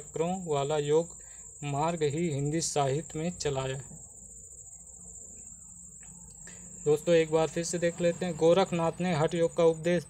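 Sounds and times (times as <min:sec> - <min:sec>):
faint low hum: 0:00.0 - 0:10.0
high-pitched insect trill: 0:00.0 - 0:10.0.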